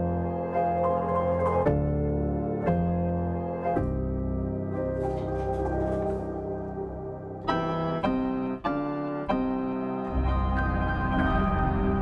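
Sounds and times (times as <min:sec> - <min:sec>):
piano melody with chords: 0:00.0 - 0:12.0.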